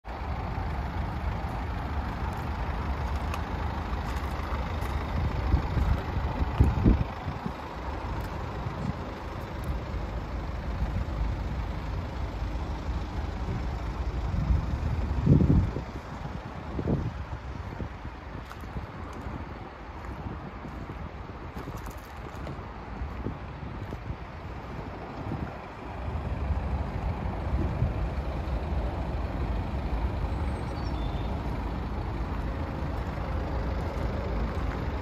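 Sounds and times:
wind rumbling on microphone: 2.2 - 9.9, 13.3 - 29.2.

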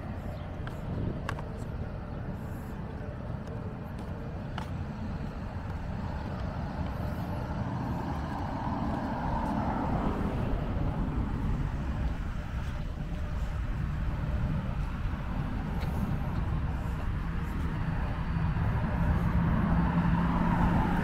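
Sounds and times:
steady low rumble: 0.0 - 21.0
car driving past: 13.7 - 21.0.

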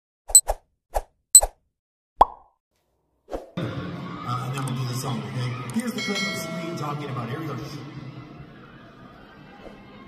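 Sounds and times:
cartoon pop sound effects: 2.2 - 2.6.

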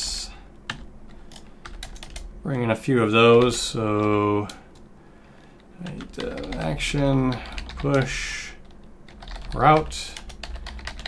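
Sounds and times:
keyboard keys clicking: 0.7 - 2.3, 5.8 - 8.1, 9.1 - 11.0.

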